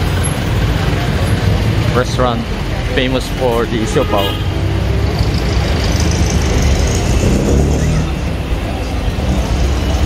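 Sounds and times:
diesel engine rumbling: 0:00.0 - 0:10.0.

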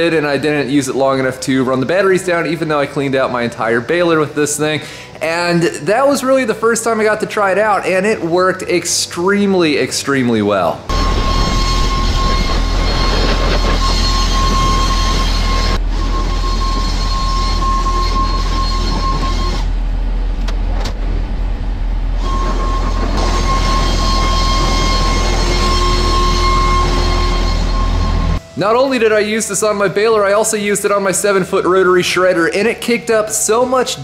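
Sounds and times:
high whine: 0:00.0 - 0:34.0
tractor engine rumbling: 0:10.8 - 0:28.6.

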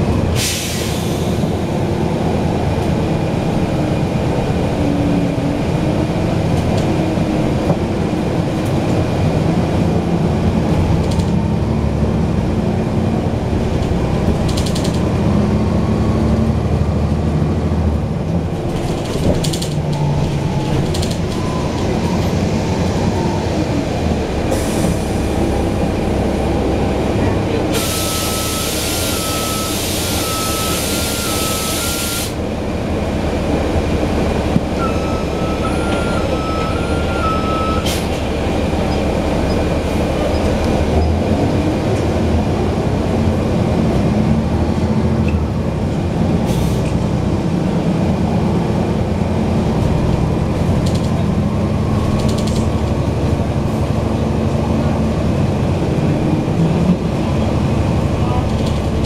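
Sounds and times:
bus diesel engine rumbling: 0:00.0 - 0:59.0
loud air hiss: 0:00.4 - 0:01.4, 0:27.7 - 0:32.4
two-tone beep: 0:28.1 - 0:32.2, 0:34.8 - 0:37.9.

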